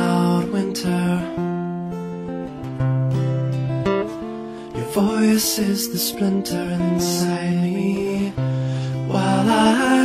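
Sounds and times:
fingerpicked acoustic guitar: 0.0s - 10.0s.

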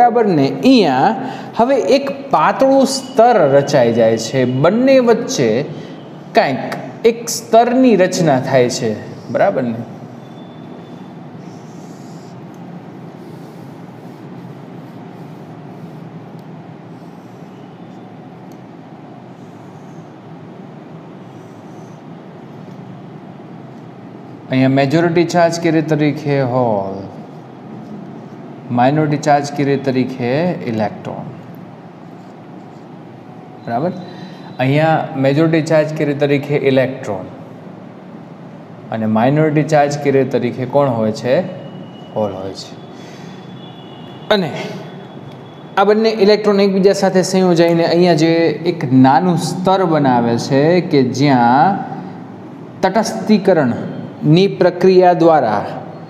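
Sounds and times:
faint high whine: 0.0s - 56.0s
room noise hiss: 0.0s - 56.0s
man speaking a syllable: 6.4s - 9.9s, 44.3s - 44.9s.

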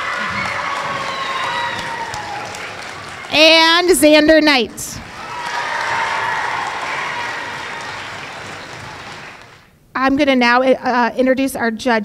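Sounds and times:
audience applauding: 0.0s - 9.7s.

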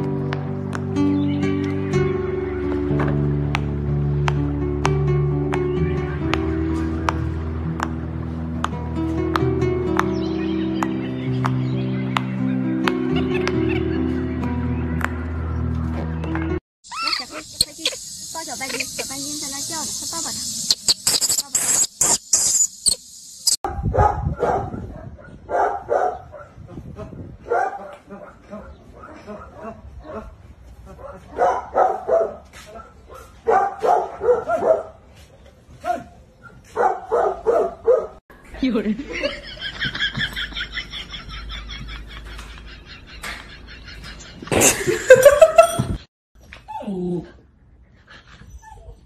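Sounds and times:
high hiss: 16.9s - 23.6s
dog barking: 23.7s - 26.6s, 27.4s - 30.3s, 30.9s - 35.0s, 35.8s - 38.2s.

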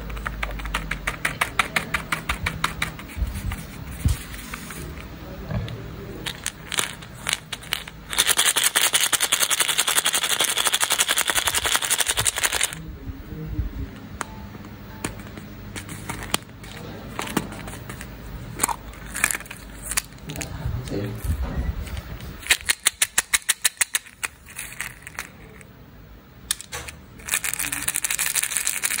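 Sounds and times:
candy rattling in plastic egg: 6.2s - 12.8s, 19.0s - 20.2s, 22.4s - 25.6s, 27.2s - 29.0s.

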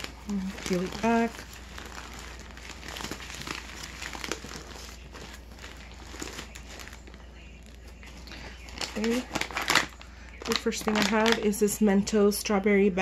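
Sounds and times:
plastic packaging crinkling: 0.0s - 11.9s.

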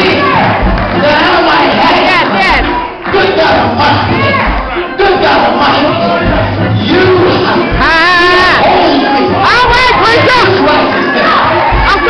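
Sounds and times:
congregation shouting: 0.0s - 12.0s.

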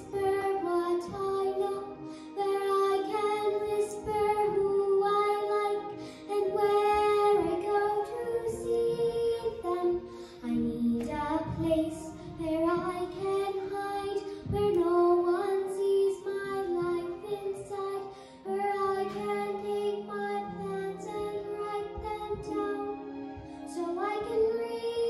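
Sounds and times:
girl singing a slow ballad: 0.0s - 25.0s.

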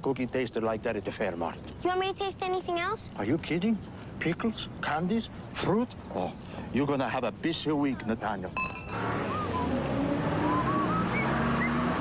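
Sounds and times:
street traffic: 0.0s - 12.0s
truck engine driving past: 8.8s - 12.0s.

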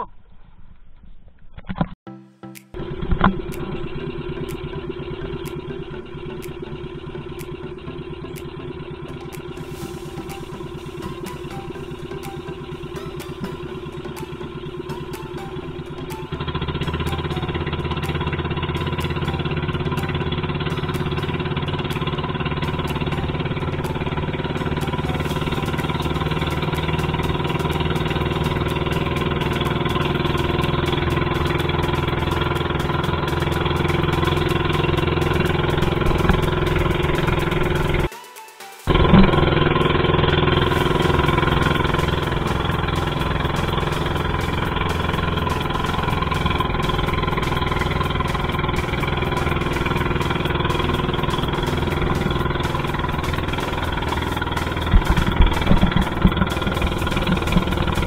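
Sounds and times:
small boat motor running: 2.8s - 38.1s, 38.9s - 58.0s.

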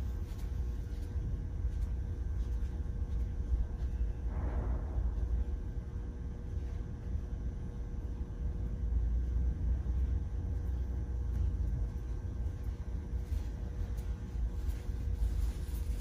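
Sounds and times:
faint constant hum: 0.0s - 16.0s
low room rumble: 0.0s - 16.0s.

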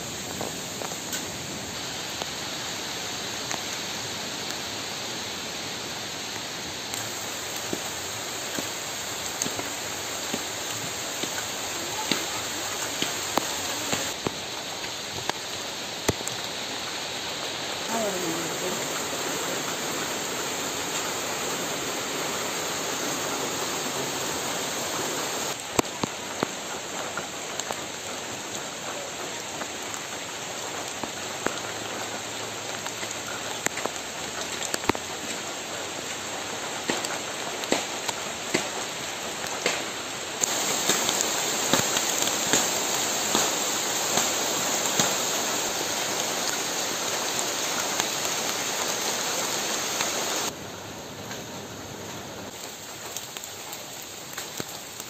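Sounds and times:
rain falling on leaves: 0.0s - 55.0s.

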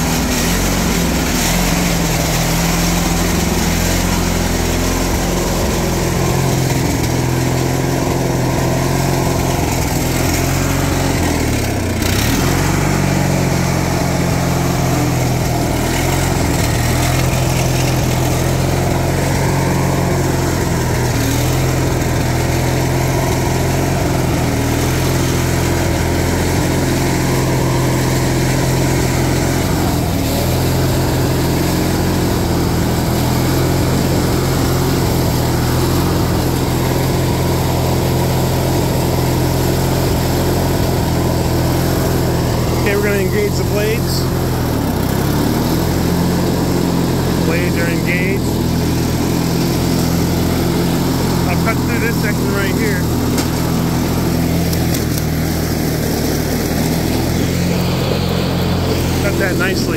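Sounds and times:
lawn tractor engine running: 0.0s - 59.9s.

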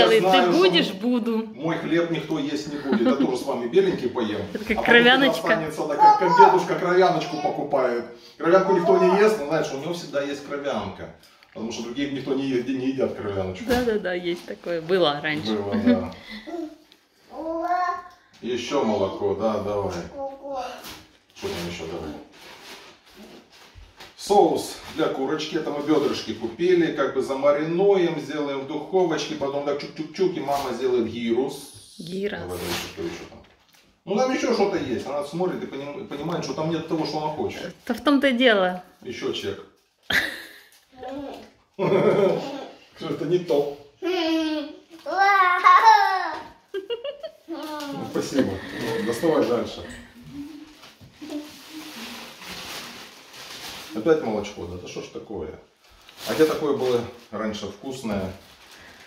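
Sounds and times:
plastic bag rustling: 11.7s - 16.4s, 20.7s - 26.5s, 46.7s - 55.2s, 55.8s - 59.0s.

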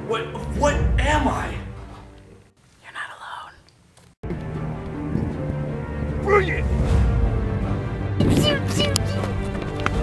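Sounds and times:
trailer music: 0.0s - 2.5s, 4.2s - 10.0s
person whispering: 2.8s - 3.7s.

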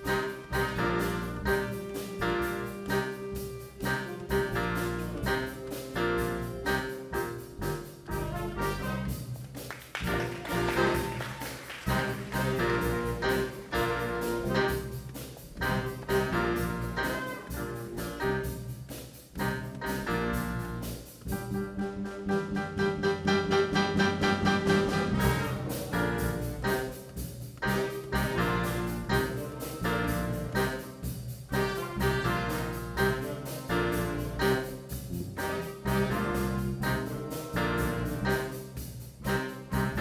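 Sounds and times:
jazz band playing: 0.0s - 40.0s.

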